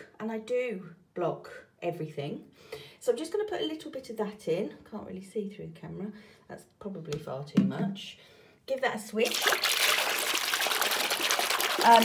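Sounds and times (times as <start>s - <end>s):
hand splashing in water: 9.3s - 12.0s.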